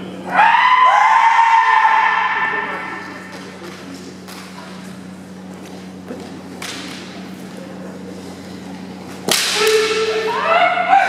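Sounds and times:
person shouting: 0:09.6 - 0:11.0.

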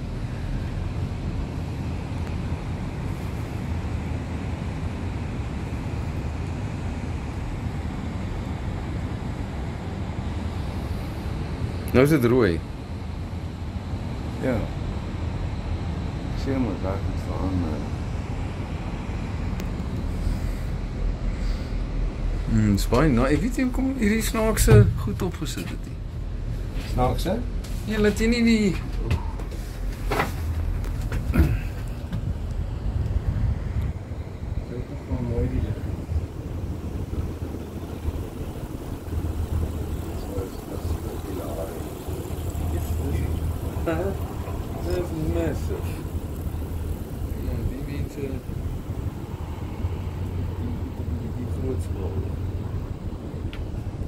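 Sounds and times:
low rumble with hiss: 0:00.0 - 0:54.0
quiet voices talking: 0:34.5 - 0:53.1.

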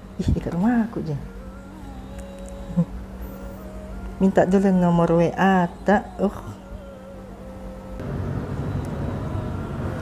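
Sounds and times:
low outdoor background rumble: 0:00.0 - 0:10.0.

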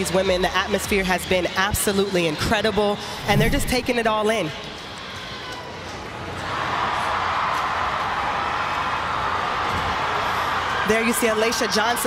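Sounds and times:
stadium crowd cheering: 0:00.0 - 0:12.0.

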